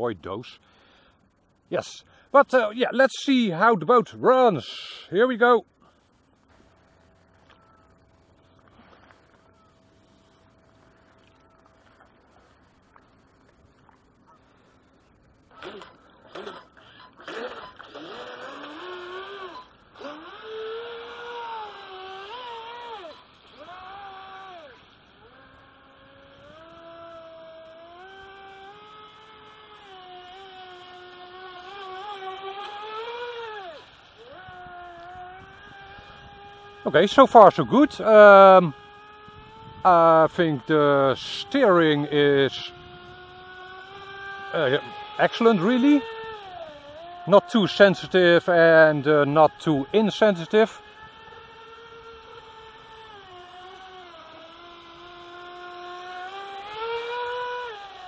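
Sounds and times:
electric motor whine: 0.0s - 58.0s.

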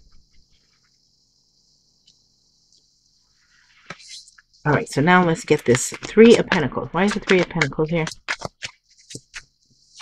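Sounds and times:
cards tapping and sliding on table: 5.7s - 10.0s.

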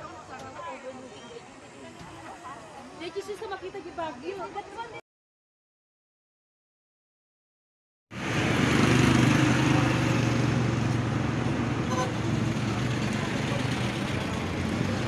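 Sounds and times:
road noise: 8.1s - 15.0s
vehicle engine humming: 8.2s - 15.0s.

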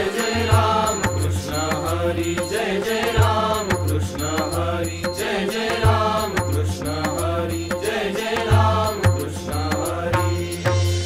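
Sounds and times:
chorus chanting: 0.0s - 11.0s.

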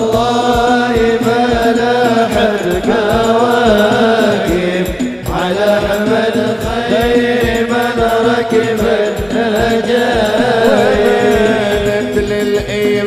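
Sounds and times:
men singing devotional song: 0.0s - 13.0s
frame drum beat: 8.8s - 12.4s.

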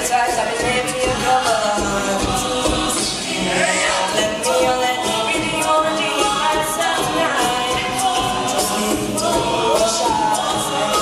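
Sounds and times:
a cappella group singing: 0.0s - 11.0s
low regular vocal beat: 0.0s - 11.0s.

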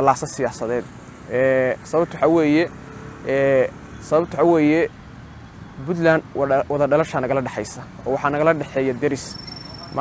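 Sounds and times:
man speaking: 0.0s - 5.0s, 5.8s - 10.0s.

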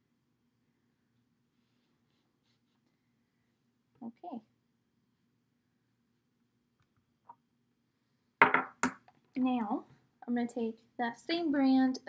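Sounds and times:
items knocking on a table: 8.4s - 9.1s.

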